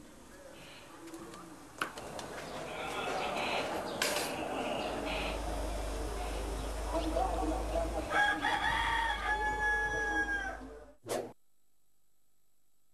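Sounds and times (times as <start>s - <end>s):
street background noise: 0.0s - 11.0s
low hum: 2.0s - 8.4s
rooster crowing: 8.0s - 10.8s.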